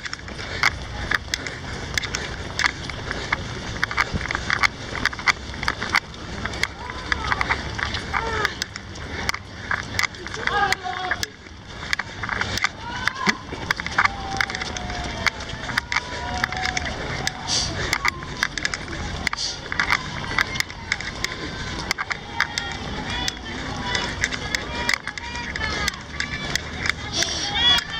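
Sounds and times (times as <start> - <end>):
running footsteps on asphalt: 0.0 - 27.9
voices: 0.0 - 27.9.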